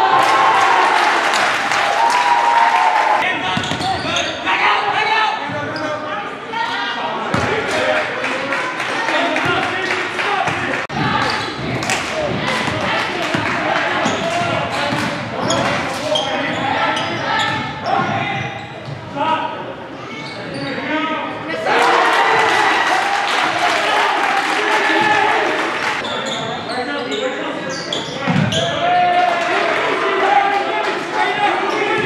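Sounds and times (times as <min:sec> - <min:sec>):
people shouting: 0:21.6 - 0:25.6.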